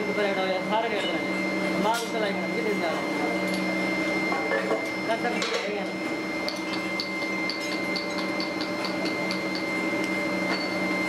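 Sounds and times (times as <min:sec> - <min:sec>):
machinery drone with high whine: 0:00.0 - 0:11.0.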